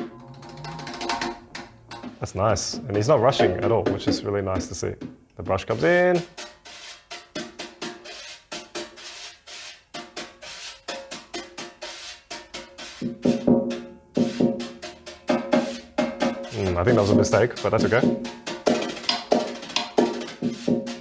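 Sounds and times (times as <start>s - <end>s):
snare drum played with brush: 0.0s - 21.0s.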